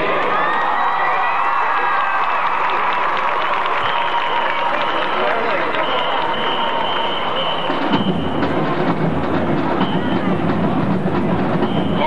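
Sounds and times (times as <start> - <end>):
stadium background: 0.0 - 12.0
marching band playing: 4.6 - 12.0.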